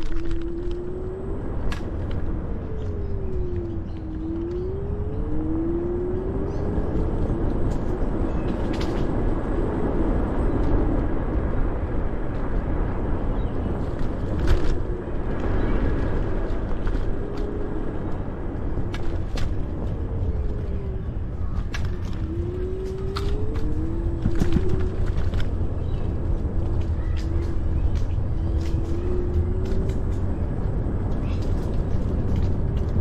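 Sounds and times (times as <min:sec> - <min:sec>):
wind and tyre rumble: 0:00.0 - 0:33.0.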